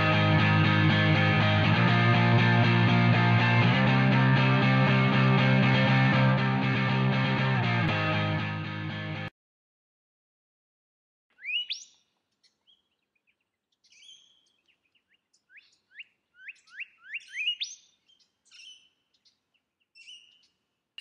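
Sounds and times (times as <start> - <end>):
bird chirping: 11.4 - 20.7.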